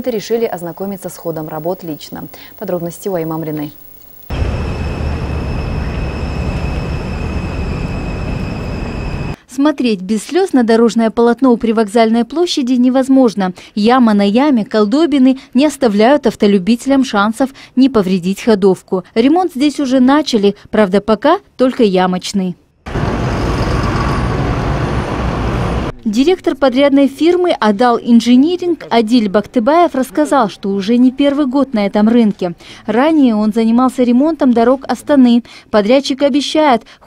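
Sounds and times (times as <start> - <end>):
high-pitched whine: 0.0 - 9.4, 22.9 - 25.9
heavy diesel engines running: 4.3 - 9.4, 22.9 - 25.9
vehicles on rough road: 22.9 - 25.9
passing traffic: 22.9 - 26.0.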